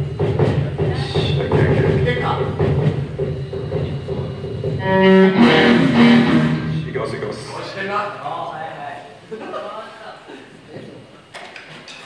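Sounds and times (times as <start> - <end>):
low amplifier hum: 2.8 - 8.2
electric guitar held notes: 4.8 - 7.2.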